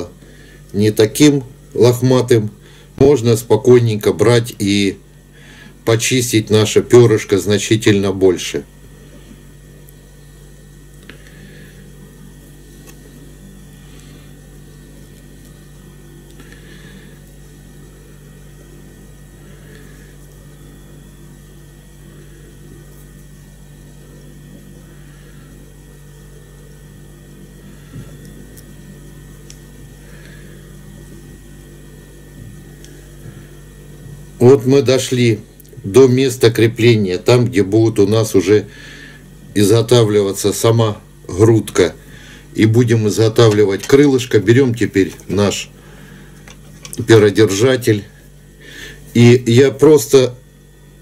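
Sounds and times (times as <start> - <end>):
low electrical hum: 0.0 - 51.0.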